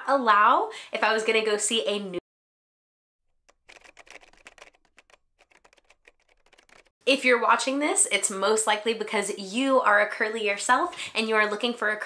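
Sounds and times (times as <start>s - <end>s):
faint rapid clicking: 3.5s - 6.9s.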